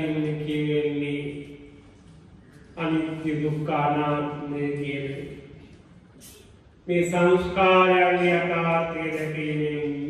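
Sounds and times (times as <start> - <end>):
man chanting through a microphone: 6.2 - 10.0.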